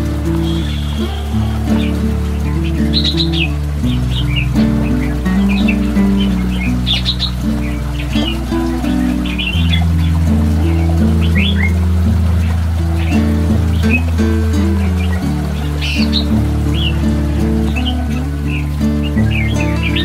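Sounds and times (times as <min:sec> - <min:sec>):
calm instrumental music: 0:00.0 - 0:20.0
small birds chirping: 0:00.0 - 0:20.0.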